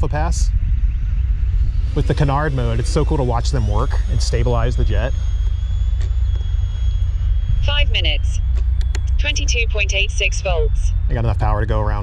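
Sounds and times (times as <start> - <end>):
distant ducted fan whine: 0.0 - 12.0
heavy low rumble: 0.0 - 12.0.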